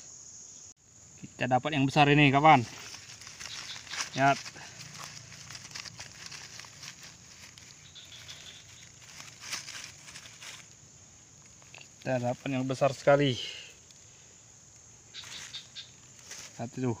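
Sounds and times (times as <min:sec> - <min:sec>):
insects chirring: 0:00.0 - 0:17.0
dry leaves rustling: 0:02.4 - 0:14.0, 0:15.1 - 0:17.0.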